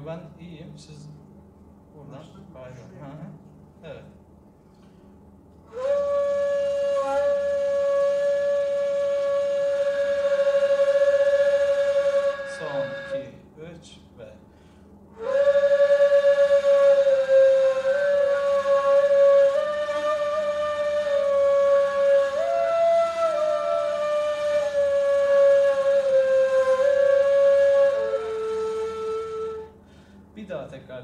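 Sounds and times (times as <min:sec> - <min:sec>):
reed flutes playing in unison: 0:05.7 - 0:13.4, 0:15.2 - 0:29.8.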